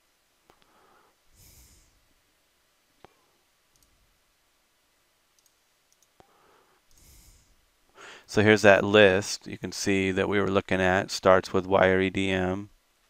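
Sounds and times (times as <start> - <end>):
faint mouse clicks: 0.5 - 0.7, 3.0 - 3.9, 5.4 - 7.1
soft breath: 0.6 - 2.1, 6.2 - 8.3.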